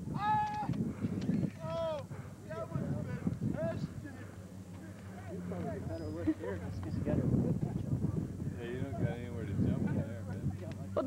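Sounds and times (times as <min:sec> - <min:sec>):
person whooping: 0:00.1 - 0:00.8
background chatter: 0:00.9 - 0:11.0.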